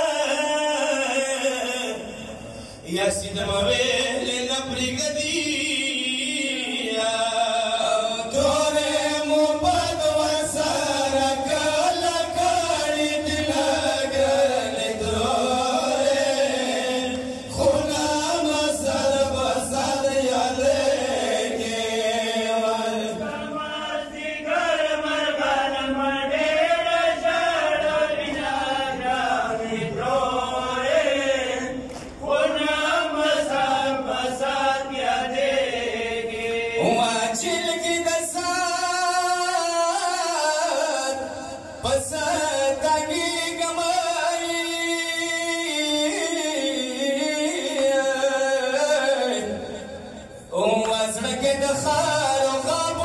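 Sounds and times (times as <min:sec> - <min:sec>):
men chanting a lament: 0:00.0 - 0:53.0.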